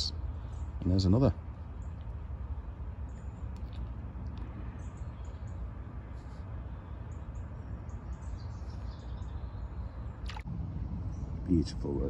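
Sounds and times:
small birds chirping: 0.0 - 12.0
steady low rumble: 9.4 - 12.0.

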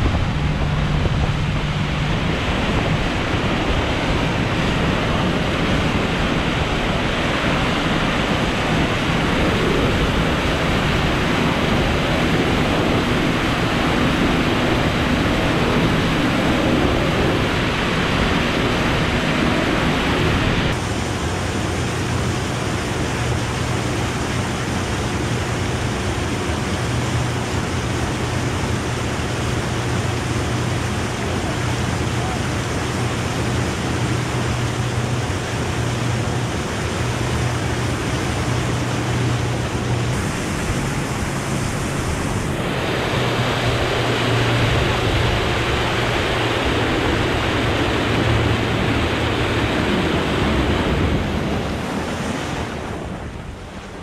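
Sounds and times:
low boat engine hum: 0.0 - 54.0
wind and water rushing: 0.0 - 54.0.

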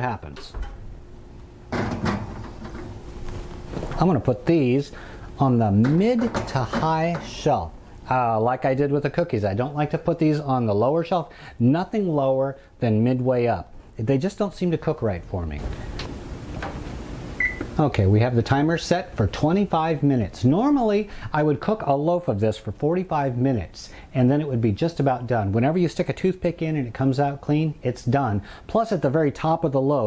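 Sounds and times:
faint steady hum: 0.0 - 30.0
oven control panel beep: 17.4 - 17.8.

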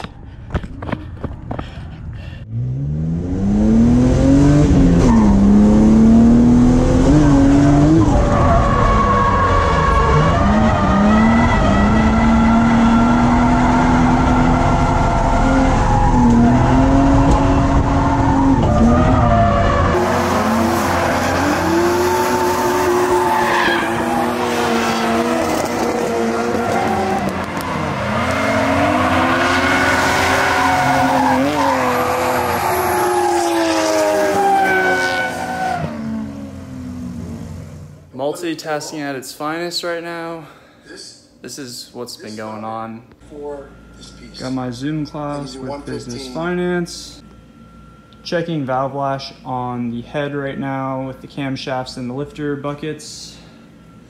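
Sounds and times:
car engine revving hard: 2.5 - 38.1
tyre squeal: 17.5 - 36.0.

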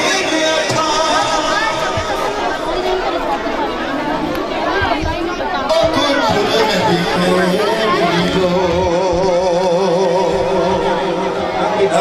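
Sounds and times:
crowd talking and calling: 0.0 - 12.0.

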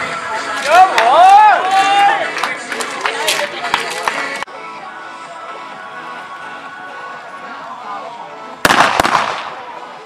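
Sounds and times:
music: 0.0 - 10.0
blank pistol shots: 8.7 - 9.5.

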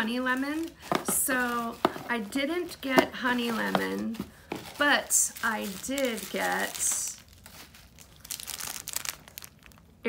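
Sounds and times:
bubble wrap crinkling: 0.0 - 10.0.

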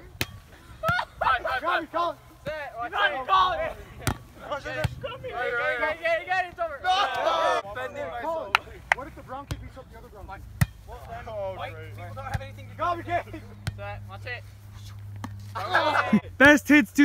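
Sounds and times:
young men talking and calling out: 0.7 - 17.0.

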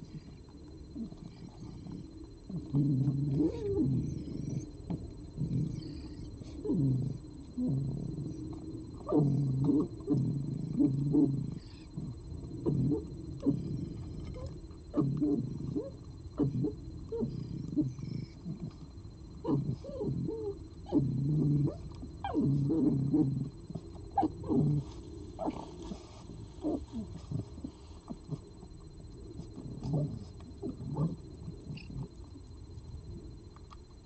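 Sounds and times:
fox chewing and crunching: 21.7 - 34.0.

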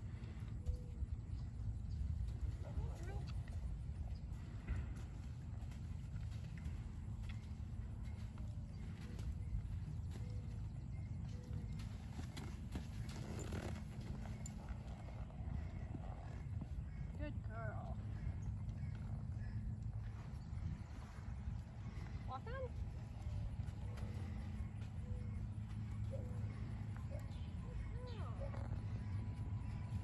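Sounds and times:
steady low rumble: 0.0 - 30.0.

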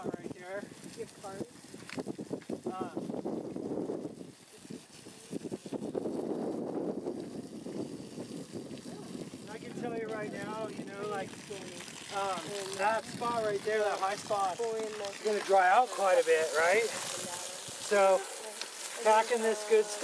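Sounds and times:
garden hose spraying water: 0.0 - 20.0
rake scraping through mulch: 11.3 - 20.0.

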